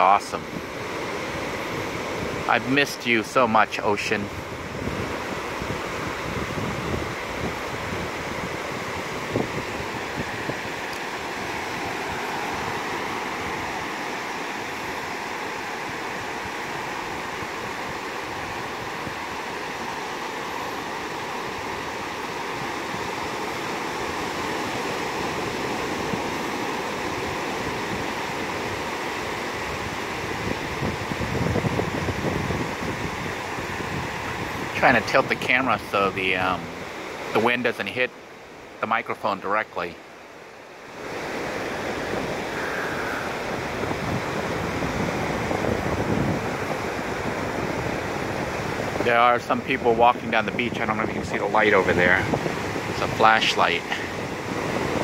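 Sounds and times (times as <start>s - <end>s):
wind buffeting microphone: 0.0s - 37.5s, 40.9s - 55.0s
ocean surf washing onto beach: 0.0s - 55.0s.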